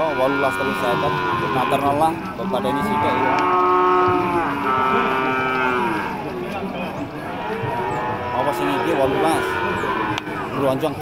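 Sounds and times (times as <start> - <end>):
bull mooing: 0.0 - 6.3, 7.2 - 10.8.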